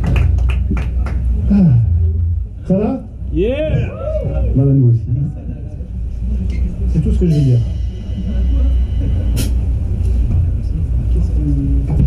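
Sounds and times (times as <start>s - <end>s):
low bass rumble: 0.0s - 12.0s.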